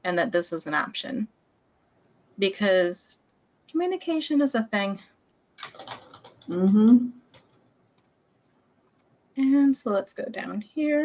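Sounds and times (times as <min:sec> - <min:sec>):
computer mouse clicks: 0:05.6 - 0:08.2.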